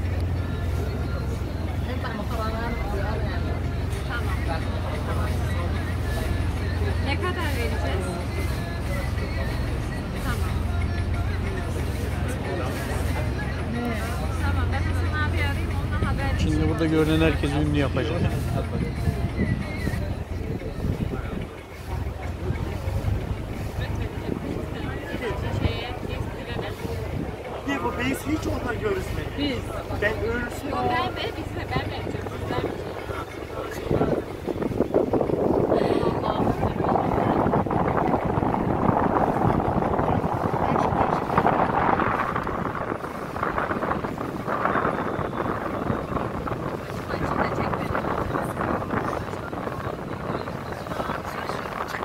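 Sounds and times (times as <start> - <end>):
boat engine humming: 0.0 - 52.0
faint voices of passengers: 0.0 - 52.0
water rushing past hull: 0.0 - 52.0
wind buffeting microphone: 1.6 - 52.0.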